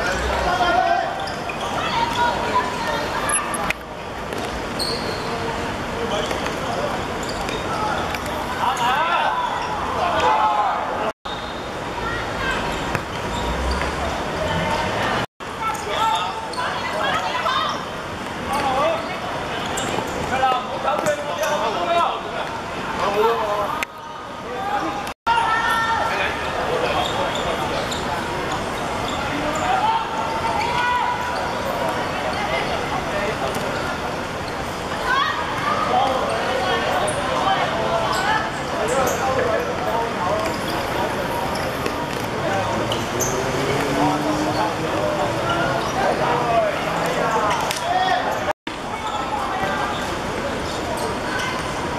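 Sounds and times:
boys shouting: 24.1 - 26.3.

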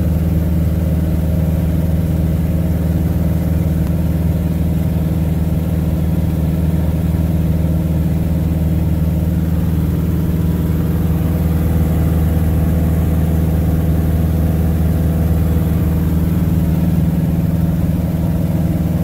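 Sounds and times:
propeller plane engine in flight: 0.0 - 19.0.

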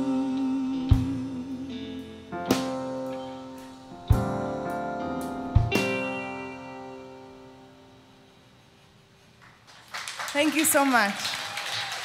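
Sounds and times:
guitar and keyboard chord ringing: 1.4 - 8.8
people clapping: 9.4 - 12.0.

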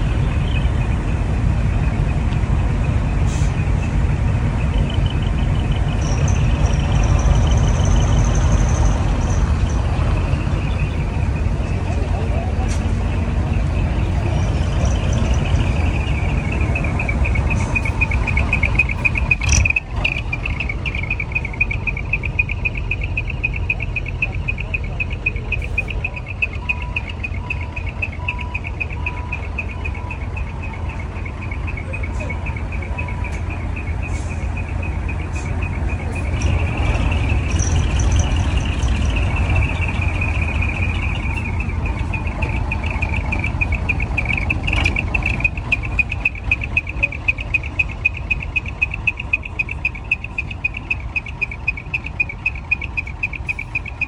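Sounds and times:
bus diesel engine passing: 0.0 - 54.0.

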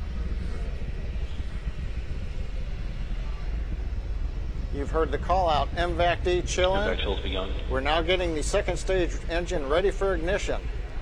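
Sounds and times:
rocket engines low rumble: 0.0 - 11.0.

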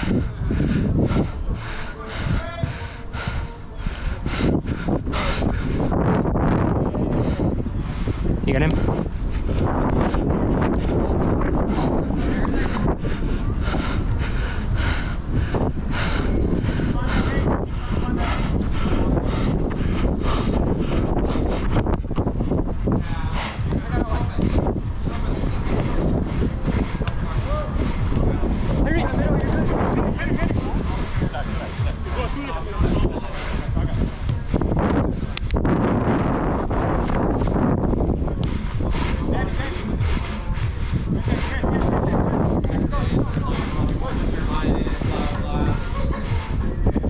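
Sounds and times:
wind rumble on microphone: 0.0 - 47.0.

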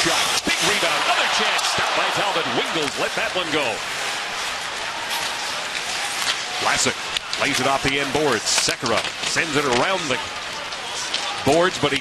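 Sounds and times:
ice rink sounds: 0.0 - 12.0.

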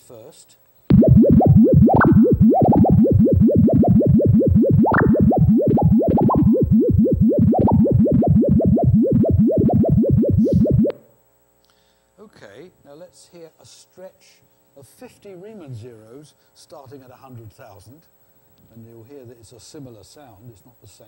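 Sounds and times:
rising synthesized pitch chirps: 0.9 - 11.1.

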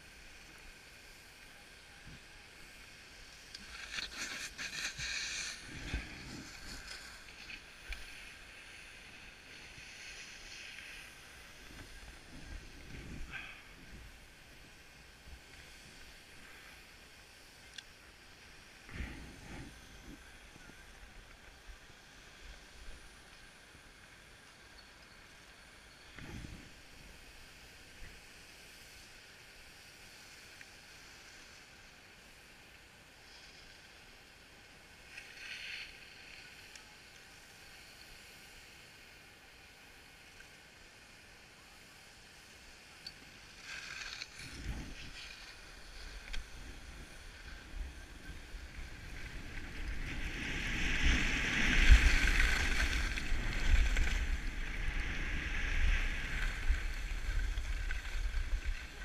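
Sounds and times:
skis sliding on snow: 0.0 - 59.0
wind gusts on microphone: 3.2 - 16.3, 44.4 - 59.0.

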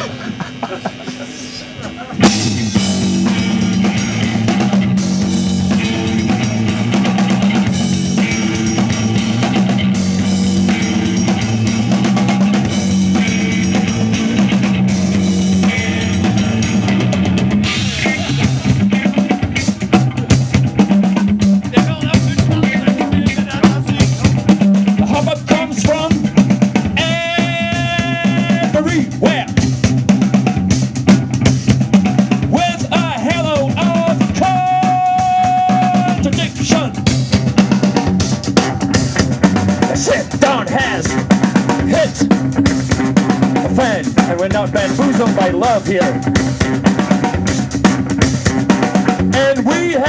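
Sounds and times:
drum kit: 0.0 - 50.0
electric guitar: 0.0 - 50.0.

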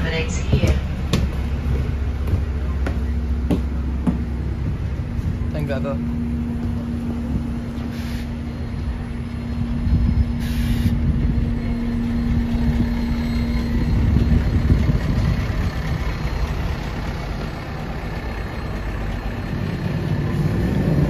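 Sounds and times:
bus engine idling: 0.0 - 21.0.

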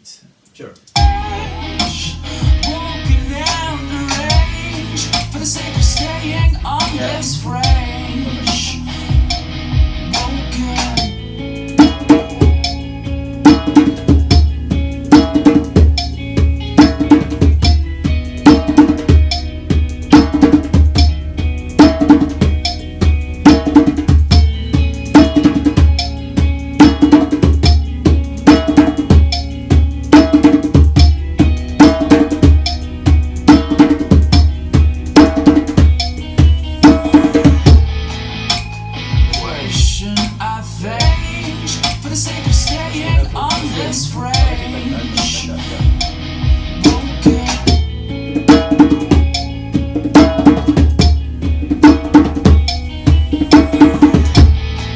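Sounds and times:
djembe bass strokes and slaps: 13.5 - 38.7, 42.7 - 54.9.

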